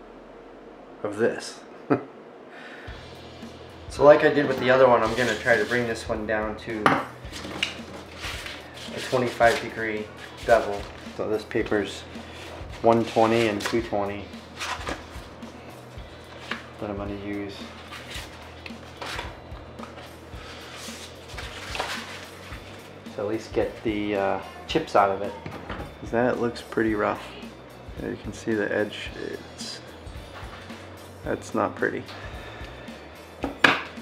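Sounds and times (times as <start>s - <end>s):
background music: 2.7s - 34.0s
sandpaper sheets rustling: 4.7s - 6.1s, 7.3s - 15.3s, 17.5s - 23.9s.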